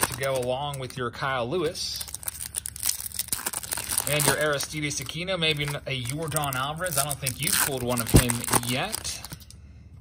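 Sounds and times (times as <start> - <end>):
foil wrapper crinkling and tearing: 0.0 - 1.1, 1.8 - 9.5.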